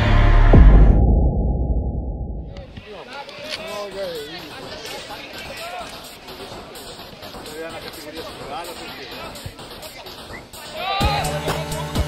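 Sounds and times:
deep muffled boom: 0:00.3 - 0:02.8
voices: 0:02.5 - 0:12.0.

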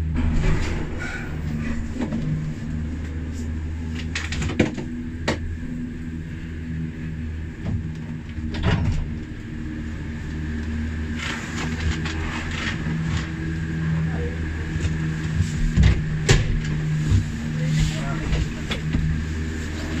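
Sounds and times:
machinery knocks and clanks: 0:00.0 - 0:05.6, 0:07.6 - 0:09.4
lift machinery humming: 0:00.0 - 0:20.0.

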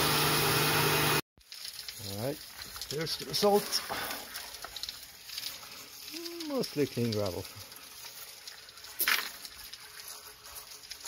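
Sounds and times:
gravel stones rattling: 0:01.4 - 0:11.0.

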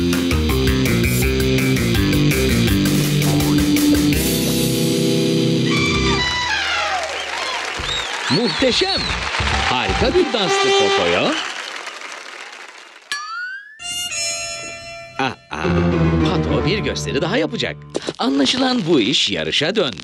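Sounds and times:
cartoon music with held chords: 0:00.0 - 0:07.1, 0:13.1 - 0:18.0
cartoon sound effects: 0:05.6 - 0:07.5.

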